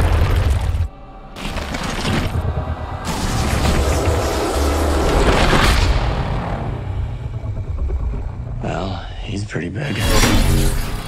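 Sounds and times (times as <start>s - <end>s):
deep low rumble: 0.0s - 9.6s.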